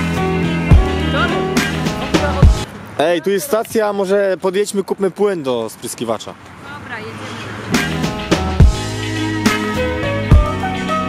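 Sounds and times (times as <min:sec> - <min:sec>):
background music with heavy beat: 0:00.0 - 0:02.7, 0:07.7 - 0:11.0.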